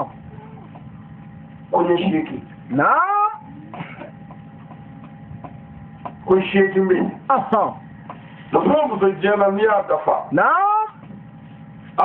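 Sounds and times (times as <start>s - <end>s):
man's voice rising in pitch: 2.7s - 3.5s.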